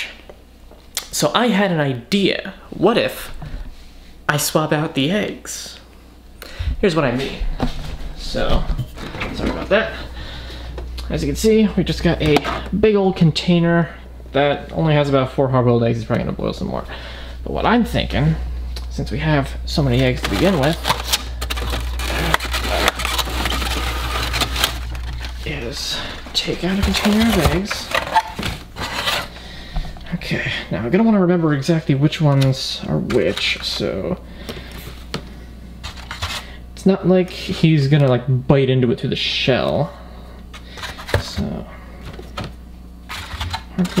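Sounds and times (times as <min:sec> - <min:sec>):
foam egg carton scraping and squeaking: 0:20.0 - 0:29.4.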